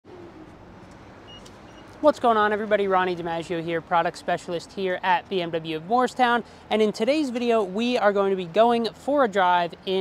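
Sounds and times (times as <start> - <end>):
distant road traffic hum: 0.0 - 10.0.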